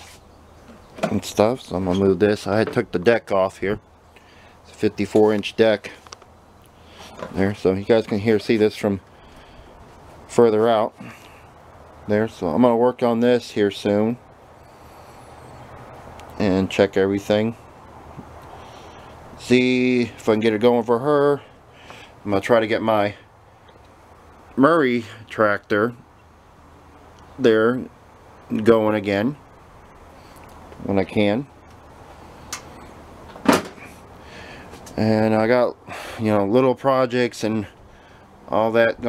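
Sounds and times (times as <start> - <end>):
steady background hiss: 0.0 - 39.0
man speaking: 1.1 - 3.8, 4.7 - 6.0, 7.2 - 9.1, 10.3 - 11.2, 12.0 - 14.3, 16.3 - 17.7, 19.4 - 21.5, 22.2 - 23.3, 27.4 - 29.4, 30.8 - 31.6, 35.0 - 37.8, 38.5 - 39.0.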